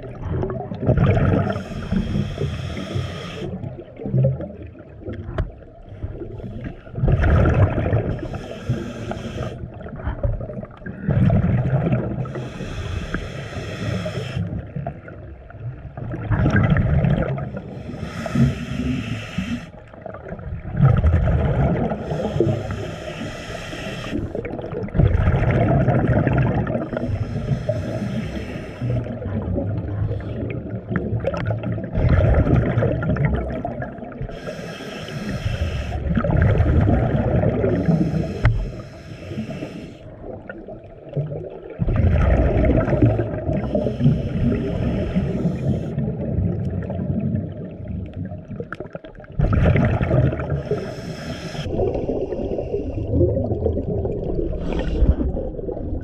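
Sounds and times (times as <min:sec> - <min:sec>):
gurgling exhaled bubbles: 0:00.0 - 0:56.0
hissing regulator inhalation: 0:01.5 - 0:03.6, 0:08.2 - 0:09.6, 0:12.2 - 0:14.6, 0:17.6 - 0:19.8, 0:21.9 - 0:24.5, 0:26.9 - 0:29.1, 0:34.3 - 0:36.2, 0:37.6 - 0:40.1, 0:43.5 - 0:46.0, 0:50.5 - 0:51.7.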